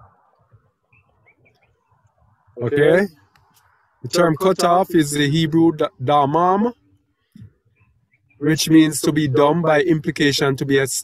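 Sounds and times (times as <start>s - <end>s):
faint bird chirps: 0.0s - 2.6s, 6.8s - 8.6s.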